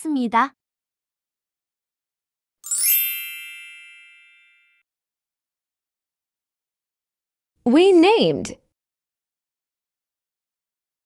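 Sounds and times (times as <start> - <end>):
bell-like chime ringing: 2.6 - 4.9.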